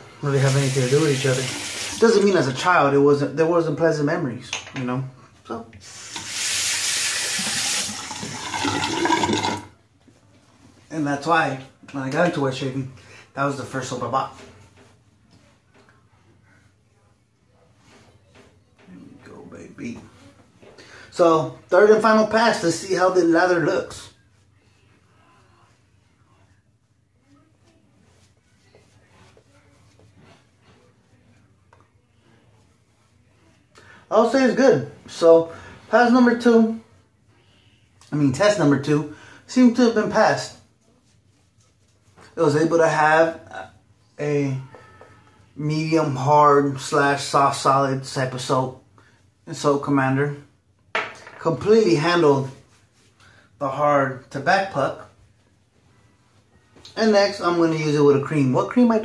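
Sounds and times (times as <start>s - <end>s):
shaving brush swishing: 0.2s - 2.3s
sink tap water running: 0.2s - 2.6s, 5.8s - 9.7s.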